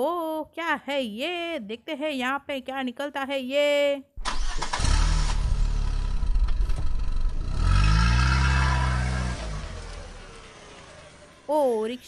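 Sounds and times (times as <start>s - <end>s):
vehicle engine revving: 4.2s - 11.5s.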